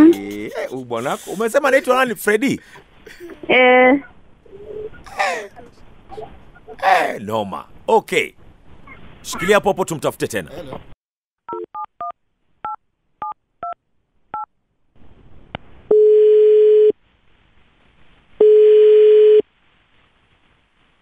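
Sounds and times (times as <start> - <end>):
telephone ringback tone: 18.4 - 19.4.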